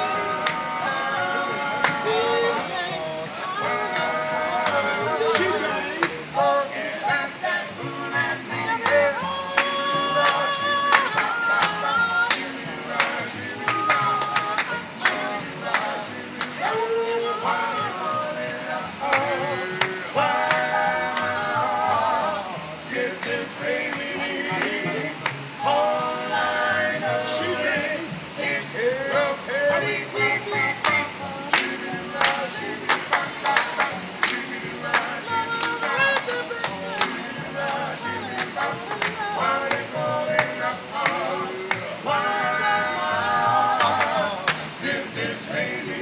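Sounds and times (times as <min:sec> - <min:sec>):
men singing in close harmony: 0:00.0 - 0:46.0
upright double bass: 0:00.0 - 0:46.0
hand claps: 0:00.4 - 0:00.7, 0:01.8 - 0:02.2, 0:08.8 - 0:16.8, 0:19.1 - 0:21.4, 0:23.2 - 0:25.6, 0:30.8 - 0:42.0, 0:43.8 - 0:44.8
sharp hand claps: 0:30.8 - 0:37.8, 0:43.8 - 0:44.7.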